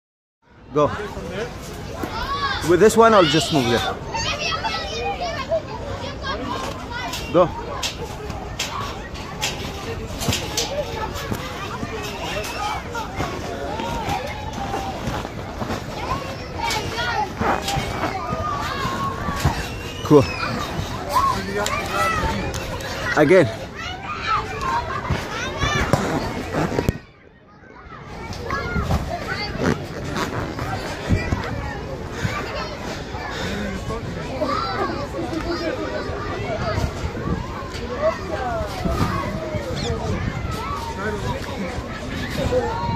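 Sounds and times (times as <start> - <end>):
general hubbub: 0.4 - 42.9
children chattering: 0.5 - 42.9.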